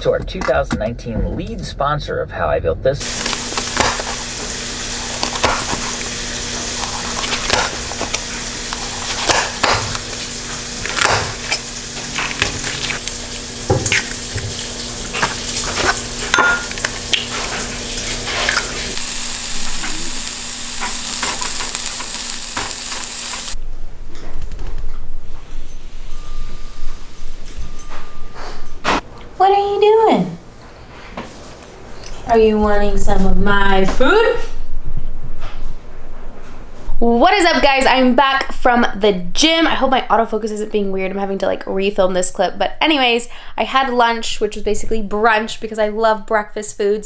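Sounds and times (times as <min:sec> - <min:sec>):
food sizzling in a pan: 0:03.0 - 0:23.6
utensils clicking and knocking: 0:13.7 - 0:23.6.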